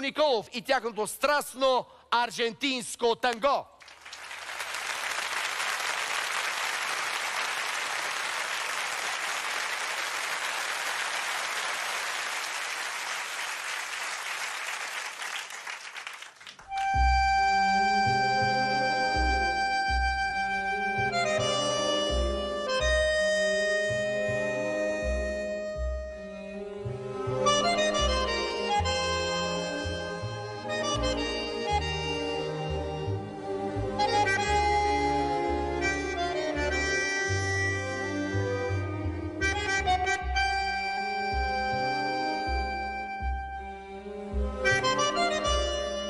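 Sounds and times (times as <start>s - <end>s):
audience applauding: 3.8s - 17.2s
tango music with accordion: 16.7s - 46.0s.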